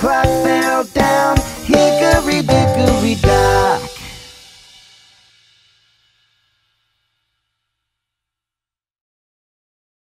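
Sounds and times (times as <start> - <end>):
cymbal-like ring: 2.0 - 7.6.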